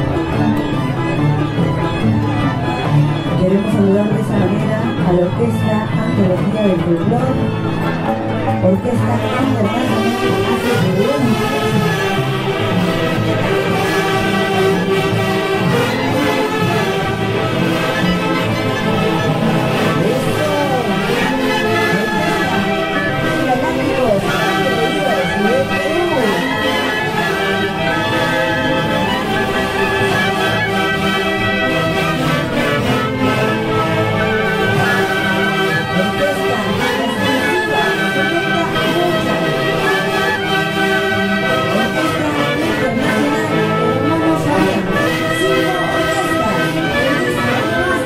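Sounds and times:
violins and harps playing melody: 0.0 - 48.0.

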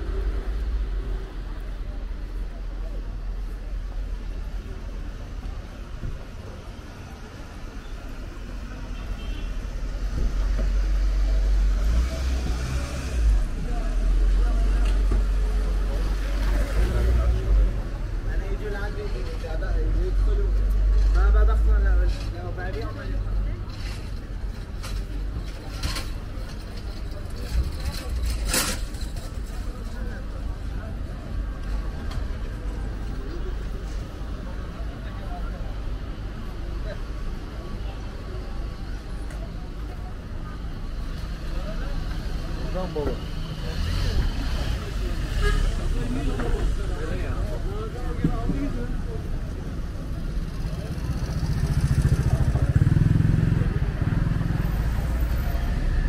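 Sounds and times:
low traffic rumble: 0.0 - 56.0
passers-by talking: 0.0 - 56.0.

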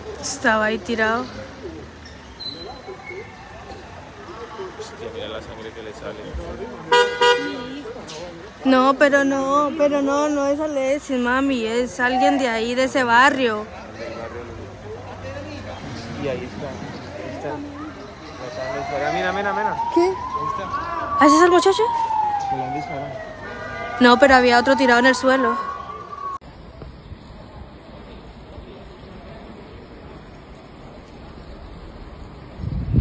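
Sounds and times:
car horn toots: 6.9 - 7.8
emergency vehicle siren wailing: 17.3 - 26.4.

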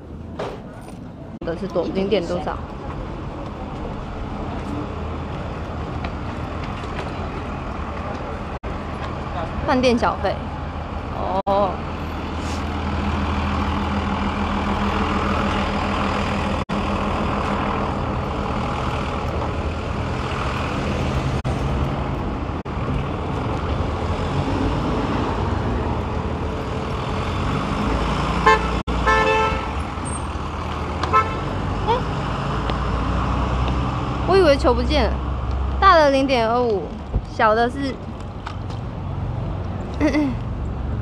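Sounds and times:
city street traffic: 0.0 - 41.0
car horn toot: 28.4 - 29.8, 31.1 - 31.4.

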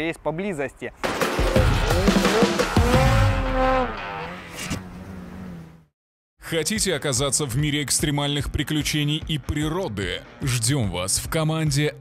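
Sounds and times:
motor engine revving: 1.4 - 5.9.

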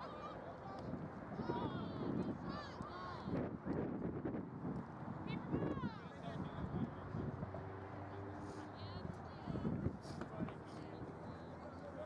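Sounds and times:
steady outdoor noise: 0.0 - 12.0.

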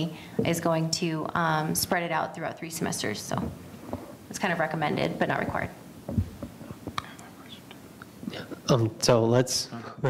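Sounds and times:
soft low thump: 4.8 - 7.0.

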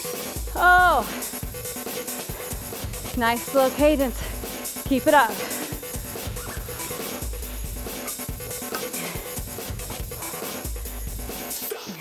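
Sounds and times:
workout music with steady beat: 0.0 - 12.0.

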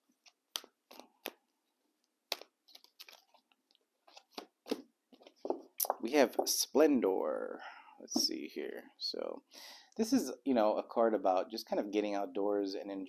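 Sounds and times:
cards being shuffled: 2.3 - 6.0.

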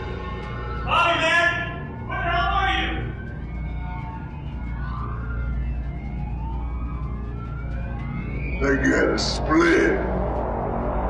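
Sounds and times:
siren-like gliding tones: 0.0 - 11.0
deep rumbling drone: 1.7 - 11.0.

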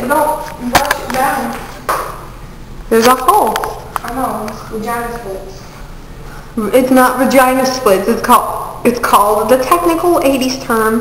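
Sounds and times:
room noise hum: 0.0 - 11.0.

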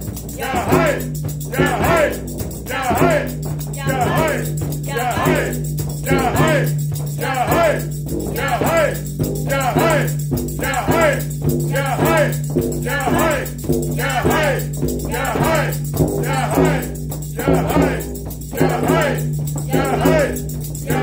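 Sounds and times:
frame drum beating: 0.0 - 21.0
rattling jingle: 0.0 - 21.0
group chanting: 0.4 - 21.0.

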